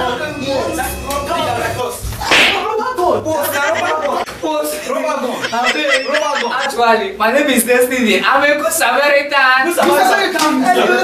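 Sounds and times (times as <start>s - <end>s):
hand slapping a body: 2.3s - 2.7s.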